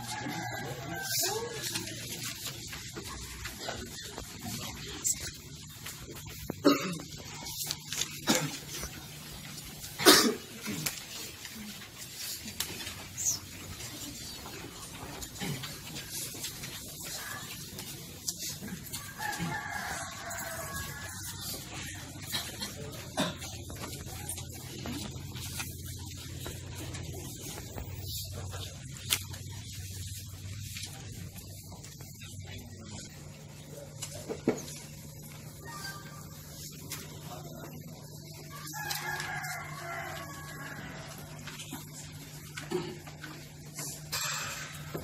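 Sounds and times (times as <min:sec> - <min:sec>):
rooster crowing: 0:00.0 - 0:02.4, 0:18.8 - 0:22.0, 0:38.3 - 0:41.6.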